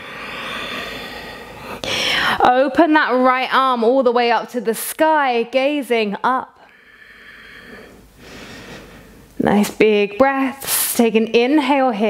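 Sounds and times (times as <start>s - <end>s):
sharp inhale: 0.0s - 2.4s, 6.6s - 9.3s.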